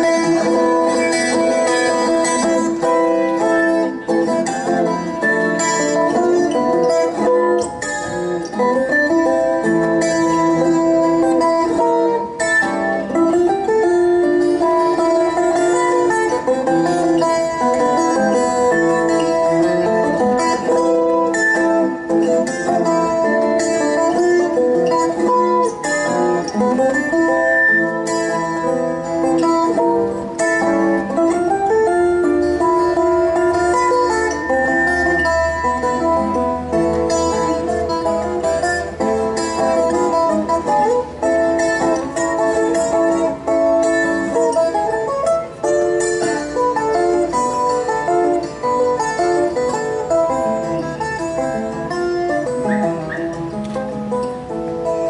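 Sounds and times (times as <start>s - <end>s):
small steel-string guitar plucked melody: 0.0s - 55.0s.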